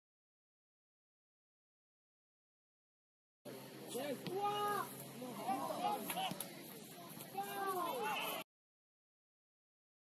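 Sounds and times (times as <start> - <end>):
voices shouting excitedly: 4.0 - 6.4, 7.1 - 8.4.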